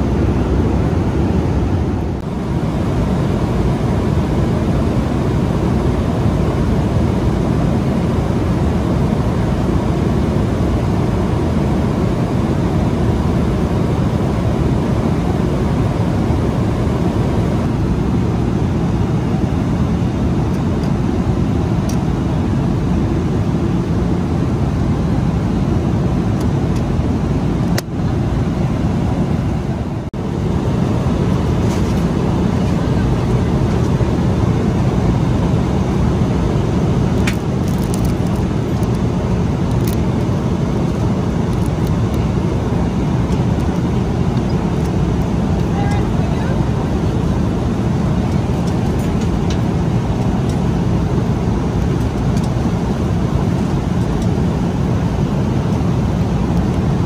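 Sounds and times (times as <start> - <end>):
airplane cabin engine noise: 0.0 - 57.0.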